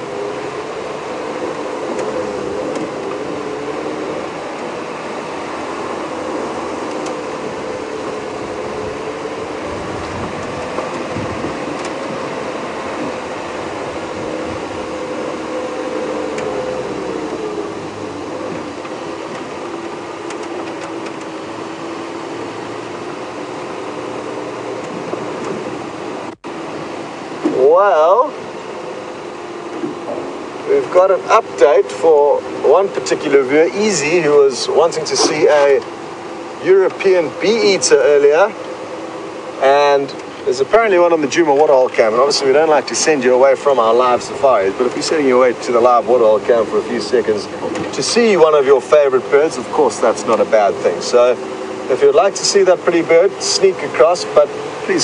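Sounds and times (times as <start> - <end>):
vehicle engine driving: 0.0 - 55.0.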